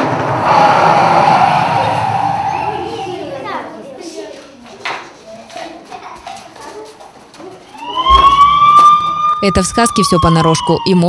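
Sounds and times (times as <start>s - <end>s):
siren rising in pitch: 0.0s - 3.8s, 7.7s - 11.0s
children's voices in a hall: 0.0s - 8.4s.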